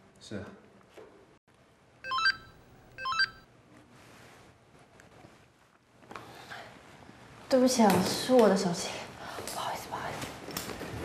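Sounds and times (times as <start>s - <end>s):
mobile phone ringtone beeps: 2.1s - 3.4s.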